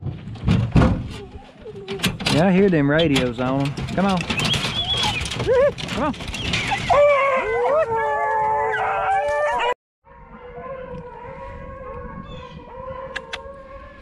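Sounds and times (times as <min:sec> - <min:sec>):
hounds howling and baying: 0:04.2 - 0:14.0.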